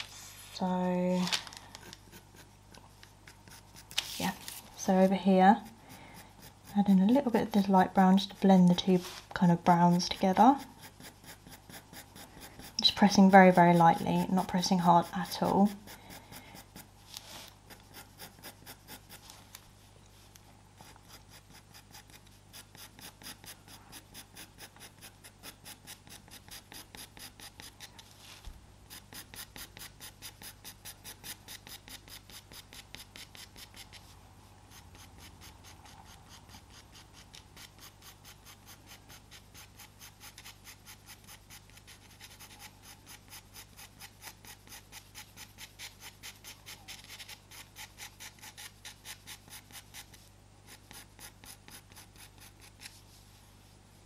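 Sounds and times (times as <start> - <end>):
pencil stroking on paper: 0.0 - 0.6, 1.2 - 53.4.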